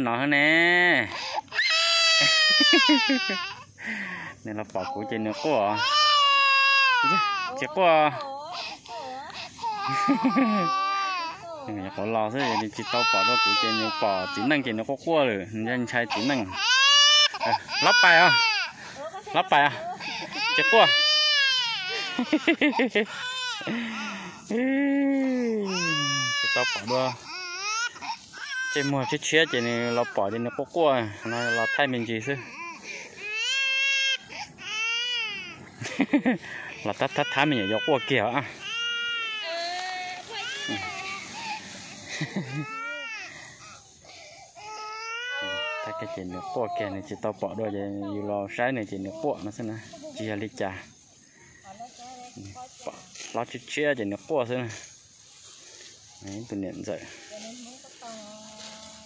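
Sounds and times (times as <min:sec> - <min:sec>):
infant crying: 0:01.1 - 0:03.7, 0:04.8 - 0:14.7, 0:15.9 - 0:18.8, 0:19.5 - 0:24.4, 0:25.6 - 0:35.7, 0:36.7 - 0:47.0
adult talking: 0:04.4 - 0:05.9, 0:11.5 - 0:16.6, 0:17.3 - 0:21.0, 0:23.7 - 0:27.2, 0:28.7 - 0:32.5, 0:36.4 - 0:38.6, 0:45.4 - 0:50.9.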